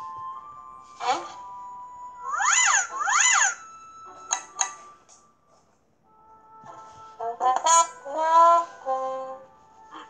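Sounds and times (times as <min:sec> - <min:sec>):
faint background tone: 0:00.0 - 0:10.0.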